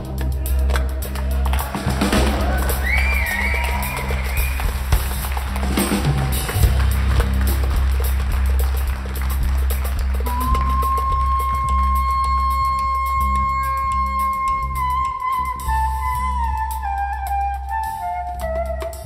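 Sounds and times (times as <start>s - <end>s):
deep sustained bass: 0.0s - 16.7s
drum kit groove: 0.0s - 19.0s.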